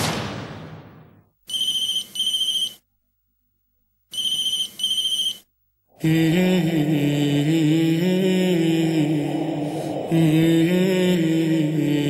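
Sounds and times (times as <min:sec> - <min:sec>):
mobile phone ringing: 0:01.5 - 0:02.8, 0:04.1 - 0:05.5.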